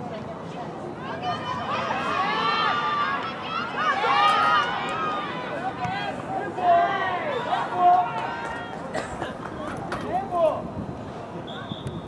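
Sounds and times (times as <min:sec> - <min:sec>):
voices shouting: 0:01.0 - 0:08.9.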